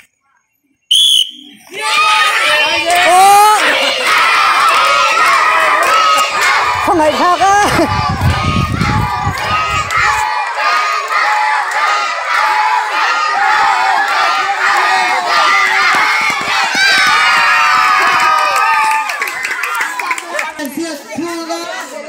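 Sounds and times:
children shouting and cheering: 1.6 - 22.0.

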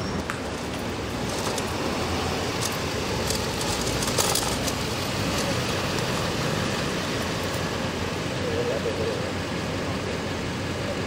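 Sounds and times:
emergency vehicle engines idling: 0.0 - 11.0
street traffic noise: 0.0 - 11.0.

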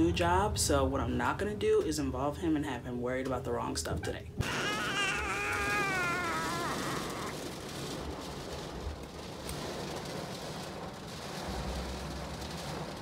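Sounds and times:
baby whining: 4.4 - 7.4
heavy rain on a car: 4.4 - 13.0
low rumble: 5.1 - 13.0.

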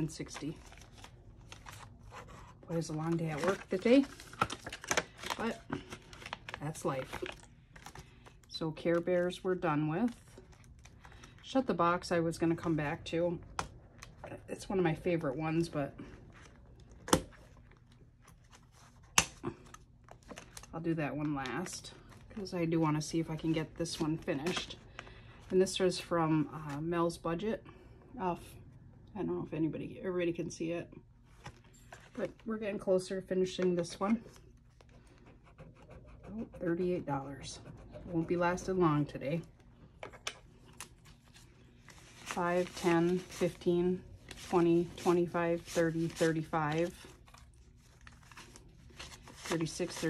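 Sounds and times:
paper banknotes rustling: 0.0 - 9.1, 40.7 - 50.0
plastic envelopes handled: 0.0 - 11.6, 16.0 - 25.8, 39.4 - 50.0.

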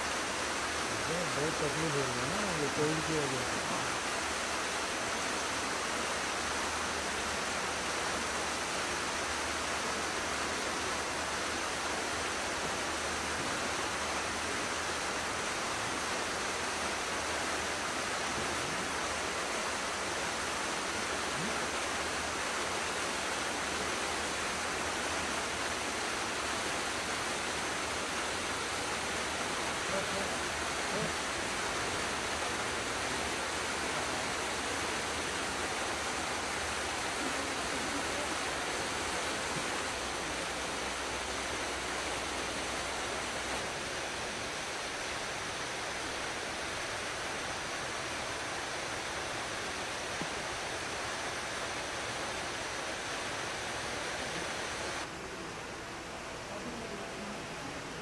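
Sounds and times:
steady hiss: 0.0 - 58.0.

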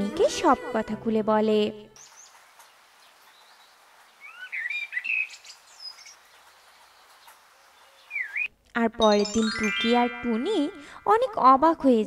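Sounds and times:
faint steady hiss: 2.0 - 8.8
birds chirping and whistling: 3.3 - 8.5.

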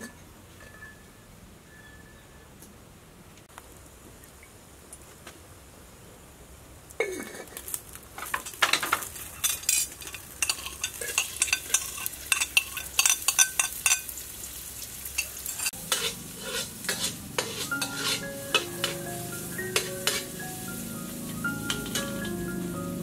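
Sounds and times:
garlic and onion sizzling in oil: 7.5 - 23.0
spatula scraping a wok: 8.4 - 14.1, 15.0 - 22.5
light music with mallet notes: 17.6 - 23.0.

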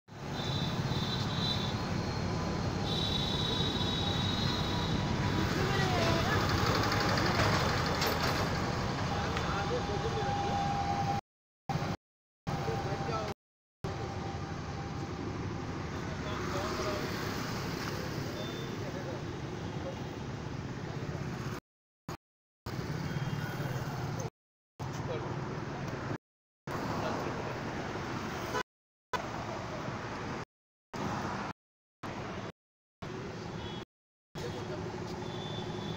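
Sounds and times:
traffic rumble: 0.2 - 11.2.

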